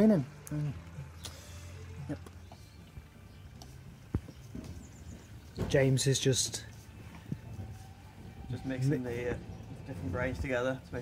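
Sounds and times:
pump humming: 0.0s - 11.0s.

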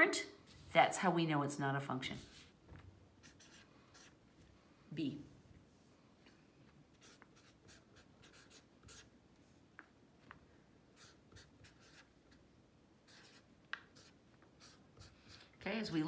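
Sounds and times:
felt-tip pen scratching on paper: 7.0s - 9.1s, 11.0s - 12.4s, 13.1s - 15.5s.

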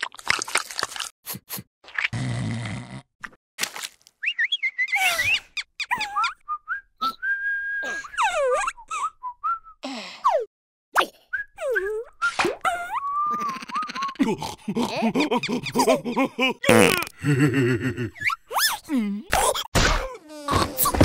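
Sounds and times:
sliding whistle-like cartoon calls: 4.2s - 7.9s.

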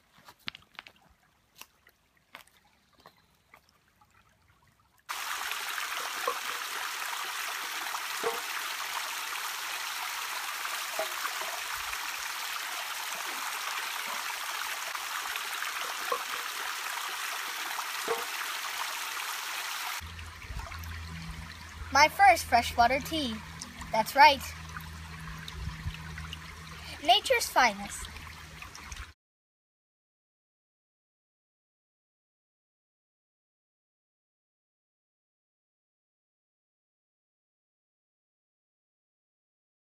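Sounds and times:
creek splashing over rocks: 0.1s - 29.2s.

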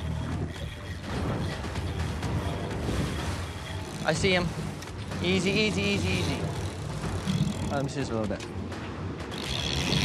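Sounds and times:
background music: 0.0s - 10.0s
boat engine running: 0.0s - 10.0s
water splashing against hull: 0.0s - 10.0s.

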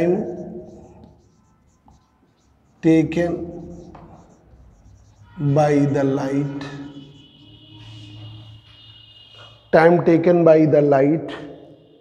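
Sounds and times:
marker tap: 0.0s - 5.4s
person speaking: 0.0s - 7.2s
marker scratching on whiteboard: 0.0s - 9.7s.

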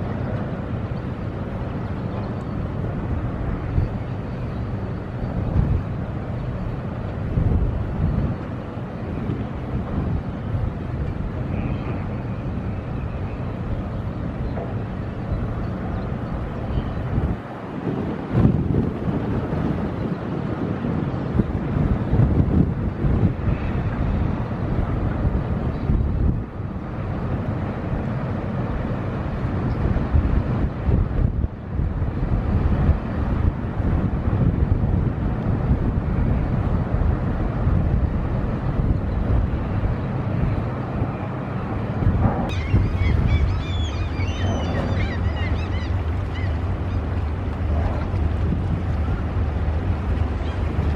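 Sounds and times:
ship engine running: 0.0s - 50.9s
wind on microphone: 0.0s - 50.9s.

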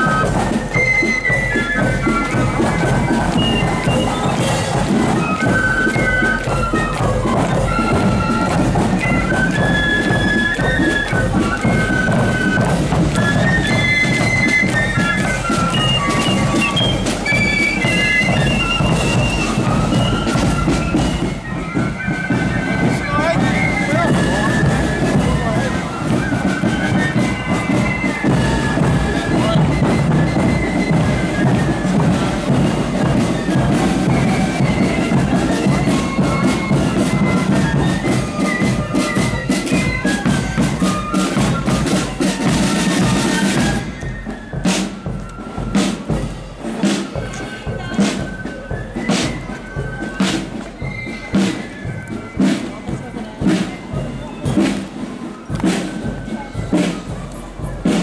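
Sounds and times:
flute melody: 0.0s - 58.0s
snare and bass drums: 0.0s - 58.0s.

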